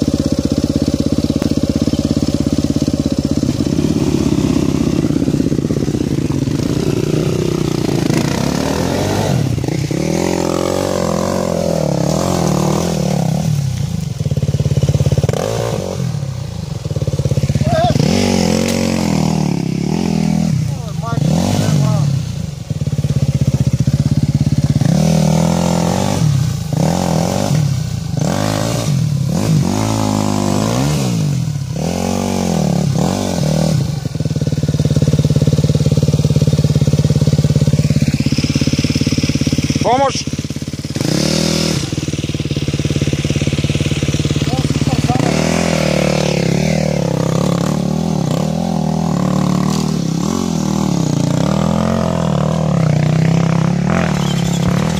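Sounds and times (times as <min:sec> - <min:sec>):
dirt bike engine revving: 0:00.0 - 0:54.9.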